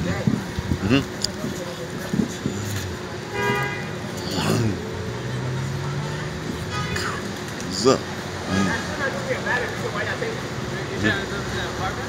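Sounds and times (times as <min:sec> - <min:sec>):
city street traffic: 0:00.0 - 0:12.0
vehicle horn honk: 0:03.3 - 0:04.0.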